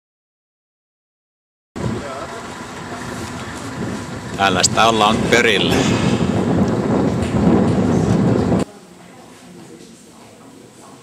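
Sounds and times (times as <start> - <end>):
wind buffeting microphone: 1.8 - 8.7.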